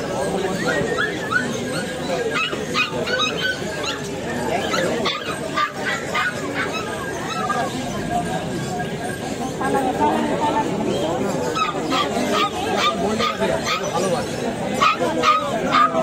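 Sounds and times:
puppies crying: 0.0s - 8.0s, 11.0s - 16.0s
crowd chatter: 0.0s - 16.0s.

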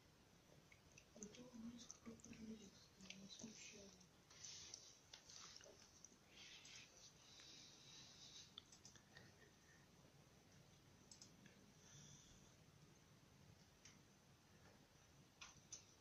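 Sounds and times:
soft rustling: 1.0s - 9.8s
faint clicks: 8.4s - 9.3s, 11.0s - 11.6s, 15.4s - 16.0s.

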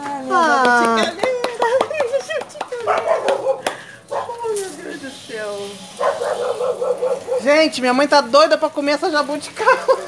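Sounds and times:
women laughing: 0.8s - 2.9s, 9.5s - 10.0s.

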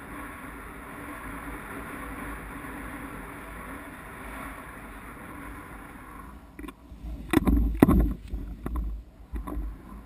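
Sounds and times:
low rumbling: 0.0s - 10.0s
wind rushing on microphone: 0.0s - 10.0s
camera rig thumps and knocks: 7.3s - 9.7s.

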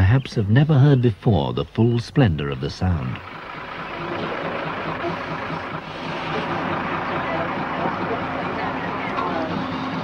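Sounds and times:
diesel engine running: 1.4s - 10.0s
babble of boys' voices: 3.9s - 10.0s.

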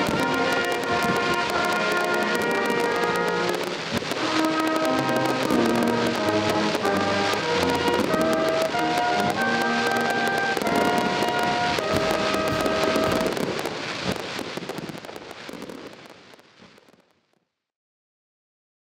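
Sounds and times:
brass band playing held chords: 0.0s - 13.5s
fireworks crackling and popping: 0.0s - 17.5s.

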